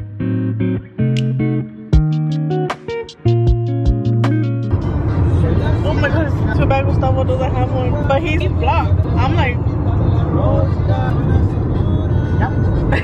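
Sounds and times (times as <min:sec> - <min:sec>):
car cabin road rumble: 0:04.3 - 0:13.0.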